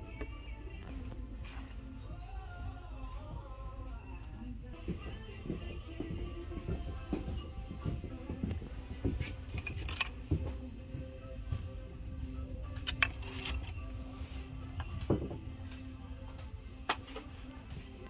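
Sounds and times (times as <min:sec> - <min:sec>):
background music: 0:00.0 - 0:18.0.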